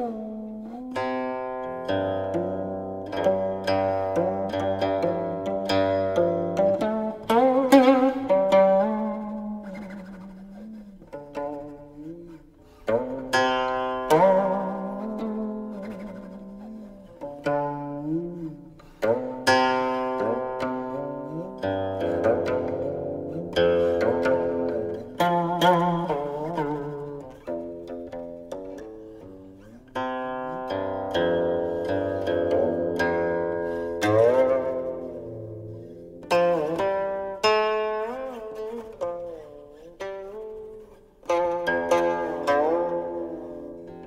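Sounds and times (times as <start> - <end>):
plucked zither notes: 0.0 - 44.0.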